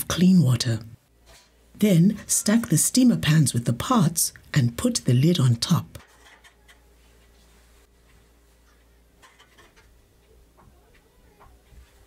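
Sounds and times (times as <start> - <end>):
metal pans tapping and scraping: 9.2 - 10.0.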